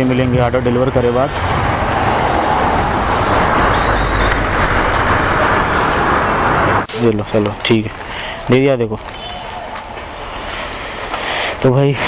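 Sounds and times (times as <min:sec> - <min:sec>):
wind rushing over microphone: 0:00.0 - 0:10.9
road and traffic noise: 0:00.0 - 0:12.0.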